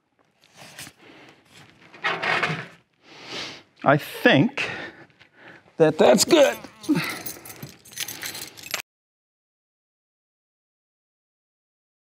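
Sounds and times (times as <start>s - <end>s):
man laughing: 5.8s - 7.4s
light jangling and rattling: 5.9s - 8.8s.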